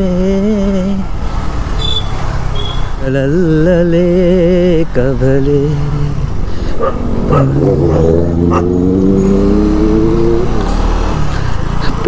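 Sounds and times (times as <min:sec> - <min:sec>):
motorcycle engine revving: 0:06.8 - 0:12.0.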